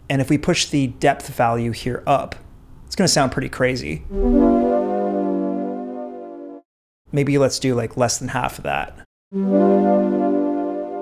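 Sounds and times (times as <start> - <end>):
distorted synth chord: 4.1 - 6.6.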